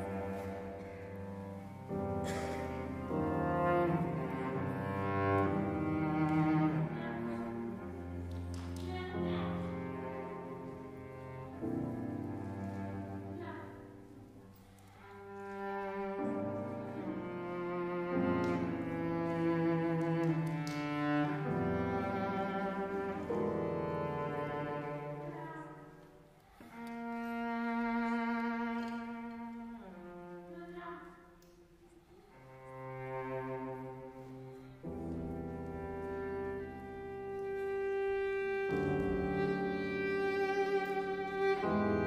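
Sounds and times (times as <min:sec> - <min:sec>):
piano: 0:00.0 - 0:30.5, 0:32.0 - 0:42.0
cello long bowed notes: 0:00.0 - 0:42.0.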